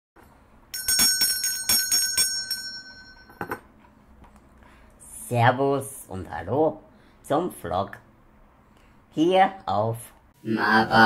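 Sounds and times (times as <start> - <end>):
small bell ringing: 0.7 - 3.4.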